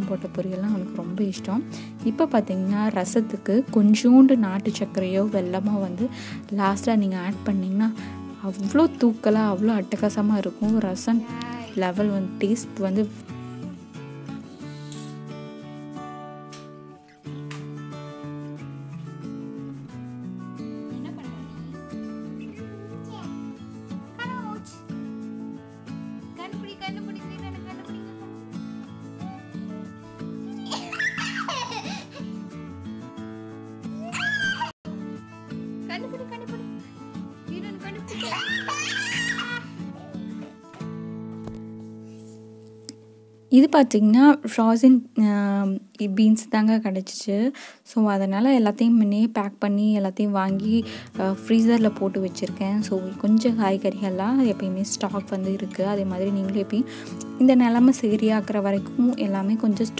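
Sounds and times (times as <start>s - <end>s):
background music: 0.0s - 45.6s, 48.1s - 59.9s
child laughing and squealing: 30.4s - 32.2s, 34.0s - 34.8s, 38.1s - 40.2s.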